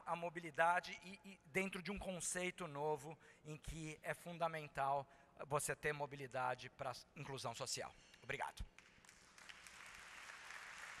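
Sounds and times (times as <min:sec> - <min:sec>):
audience applauding: 0:08.8 - 0:11.0.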